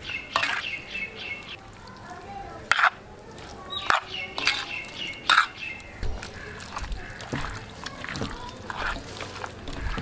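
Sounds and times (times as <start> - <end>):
thin high bird calls: 0.0 - 1.6
birds chirping: 0.0 - 2.4, 3.6 - 8.6.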